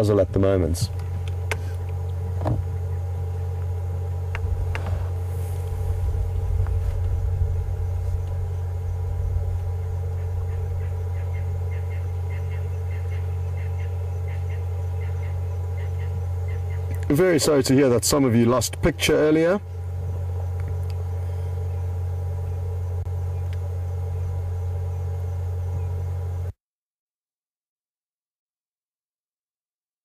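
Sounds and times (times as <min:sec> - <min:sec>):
vehicle engine idling: 0:00.0 - 0:18.2, 0:19.0 - 0:26.5.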